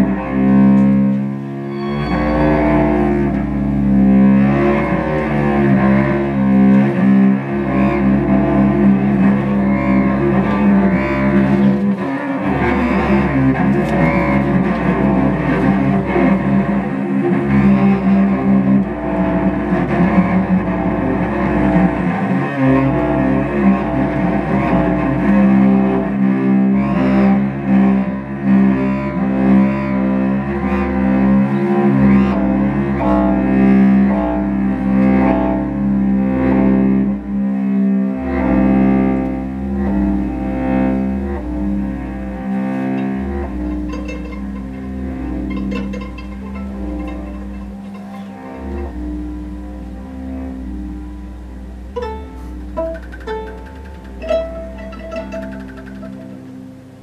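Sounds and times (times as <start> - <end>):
chamber ensemble bowed strings: 0.0 - 57.0
low cello notes: 0.0 - 57.0
mid-range drone: 0.0 - 57.0.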